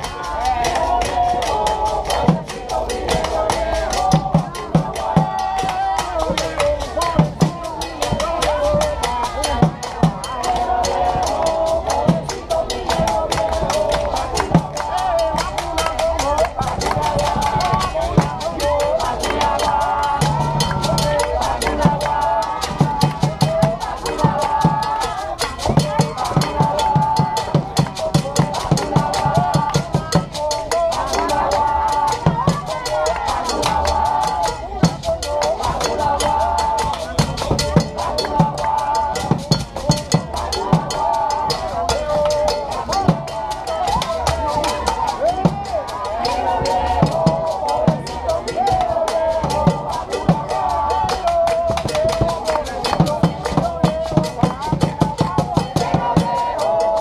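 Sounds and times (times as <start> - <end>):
hand drums: 0.0 - 57.0
voices singing: 0.0 - 57.0.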